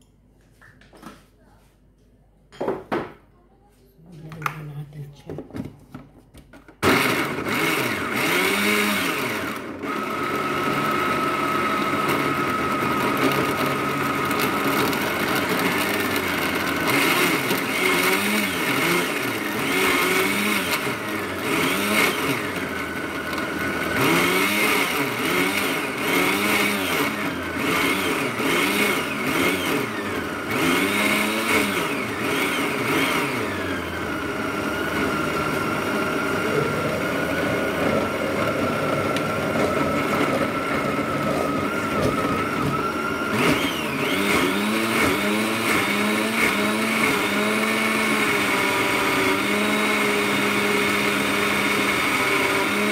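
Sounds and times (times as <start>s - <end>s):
blender motor running: 6.8s - 52.9s.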